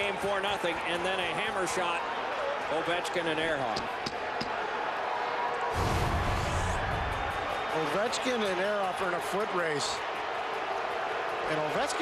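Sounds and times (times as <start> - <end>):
hockey arena crowd noise: 0.0 - 12.0.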